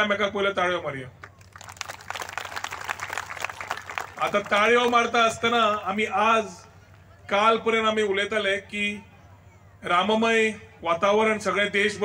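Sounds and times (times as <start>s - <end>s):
crowd applauding: 1.2s - 5.1s.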